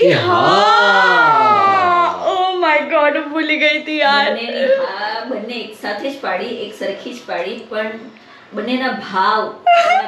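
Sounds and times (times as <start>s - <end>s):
woman squealing: 9.6s - 10.0s
woman giggling: 9.7s - 10.0s.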